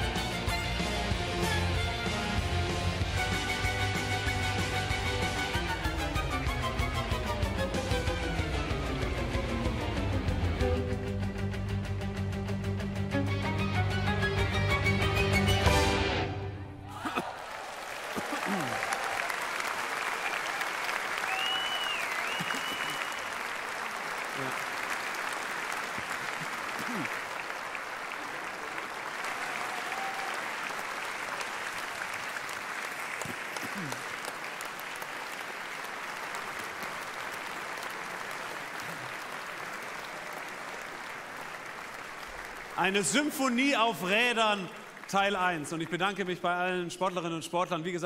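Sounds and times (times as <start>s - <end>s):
large audience applauding: 16.8s - 47.7s.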